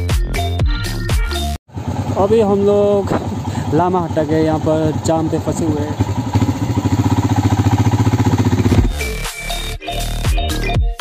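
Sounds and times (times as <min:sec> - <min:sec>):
motorcycle engine idling: 0:01.7 - 0:09.1
electronic music: 0:08.7 - 0:11.0.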